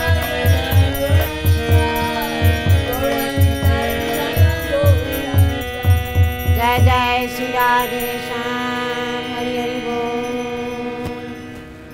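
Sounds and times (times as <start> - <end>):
woman singing: 0.0 - 11.6
harmonium holding a chord: 0.0 - 11.9.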